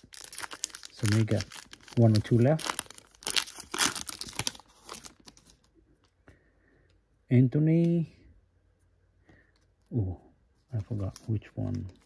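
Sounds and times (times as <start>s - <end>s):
wrapper crinkling and tearing: 0.0s - 5.7s.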